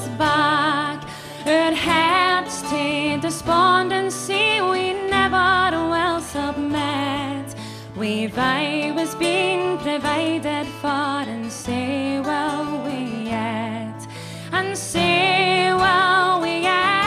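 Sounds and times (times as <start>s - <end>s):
woman singing folk song: 0.0s - 17.0s.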